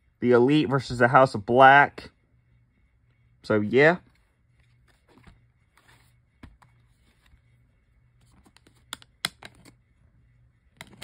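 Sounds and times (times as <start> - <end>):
plastic disc case clicks and taps: 8.5 - 9.7.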